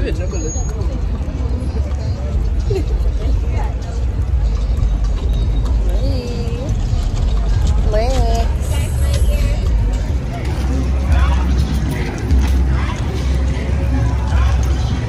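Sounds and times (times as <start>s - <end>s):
faint voices: 0.0s - 15.0s
traffic rumble: 0.0s - 15.0s.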